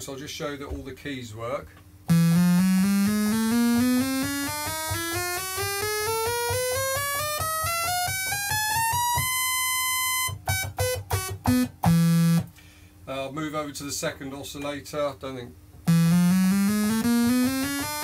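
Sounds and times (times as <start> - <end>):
buzzy synthesizer notes: 2.1 - 12.5, 15.9 - 18.0.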